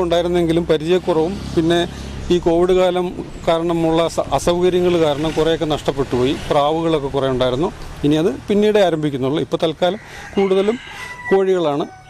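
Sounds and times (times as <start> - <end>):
man talking: 0.0 - 12.0
rooster crowing: 9.8 - 12.0.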